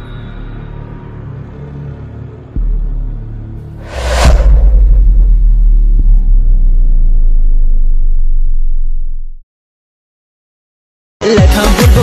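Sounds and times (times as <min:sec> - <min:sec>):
deep cinematic boom: 0:03.8 - 0:09.4
low rumble: 0:03.8 - 0:09.4.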